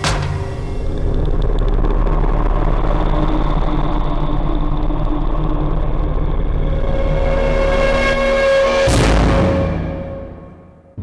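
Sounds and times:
low rumbling drone: 0:00.0 - 0:11.0.

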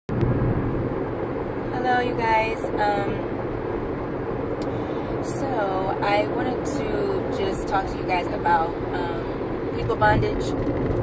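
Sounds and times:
car cabin rumble: 0:00.1 - 0:11.0
woman speaking: 0:01.7 - 0:03.3, 0:05.2 - 0:10.6.

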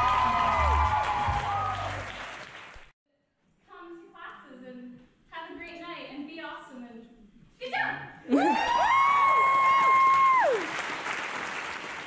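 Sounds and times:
audience clapping and cheering: 0:00.0 - 0:02.9, 0:08.4 - 0:12.0.

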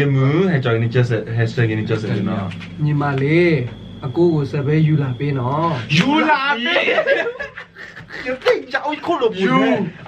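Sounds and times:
young men laughing: 0:06.2 - 0:10.0.

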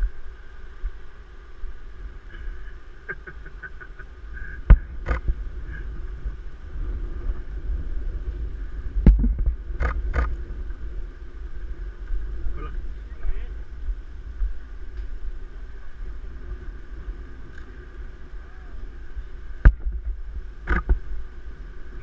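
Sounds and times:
wind buffeting microphone: 0:04.0 - 0:22.0
faint voices: 0:15.4 - 0:19.6.

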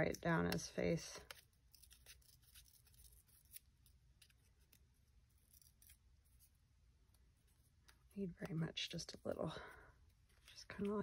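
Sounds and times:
paper strip crackling: 0:01.2 - 0:09.4.

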